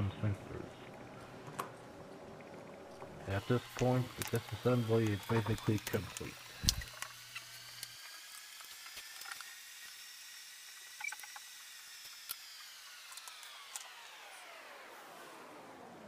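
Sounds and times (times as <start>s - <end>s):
low hiss: 2.9s - 7.1s.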